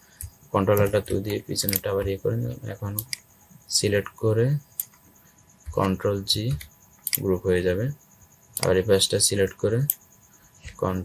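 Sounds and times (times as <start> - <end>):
computer clicks: 0.1 - 3.4, 4.0 - 7.4, 8.5 - 11.0
man speaking: 0.5 - 4.7, 5.7 - 8.0, 8.6 - 9.9, 10.6 - 11.0.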